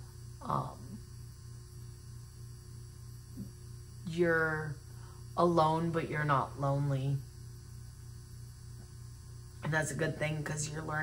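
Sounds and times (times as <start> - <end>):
low electrical hum: 0.0 - 11.0
woman speaking: 0.4 - 1.0, 4.0 - 4.8, 5.4 - 7.3, 9.6 - 11.0.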